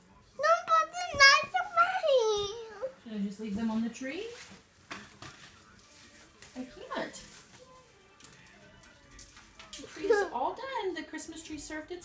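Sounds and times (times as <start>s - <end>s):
faint television sound: 0.0s - 12.0s
young child speaking: 0.4s - 3.0s.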